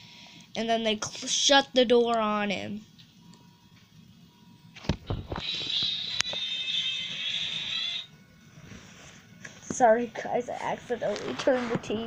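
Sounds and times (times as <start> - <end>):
tv sound with music: 3.0 - 10.0.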